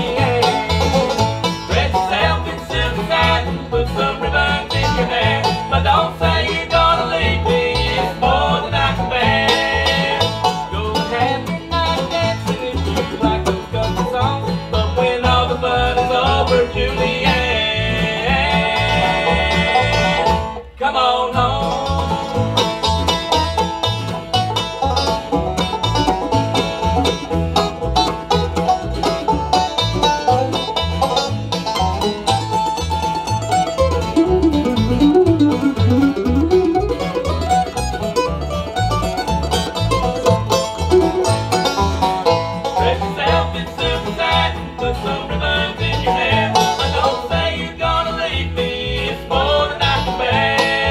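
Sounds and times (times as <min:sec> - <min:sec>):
acoustic guitar: 0:00.0 - 0:50.9
banjo picking: 0:00.0 - 0:50.9
upright bass: 0:00.0 - 0:50.9.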